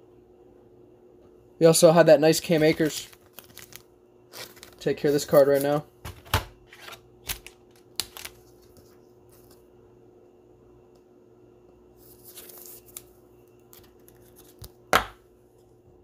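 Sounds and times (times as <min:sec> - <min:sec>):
faint steady hum: 0:00.0 - 0:16.0
card sliding rustle: 0:12.0 - 0:13.1.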